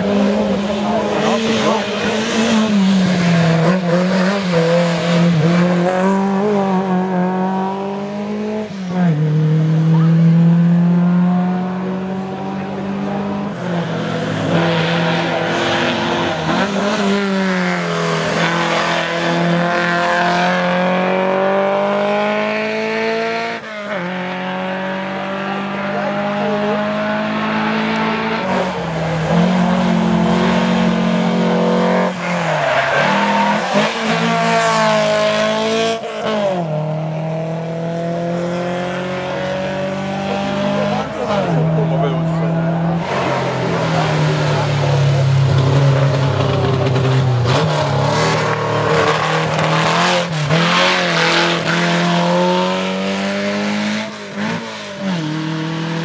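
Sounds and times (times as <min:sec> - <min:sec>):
rally car engine accelerating: 0:00.0 - 0:56.0.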